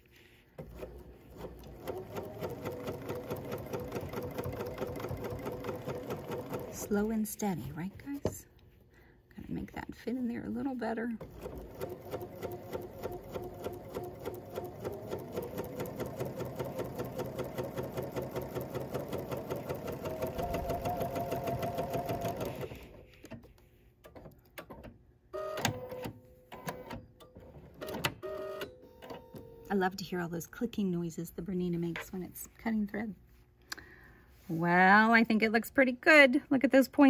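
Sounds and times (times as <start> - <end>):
sewing machine stitching: 0.6 - 7.0, 11.2 - 22.9.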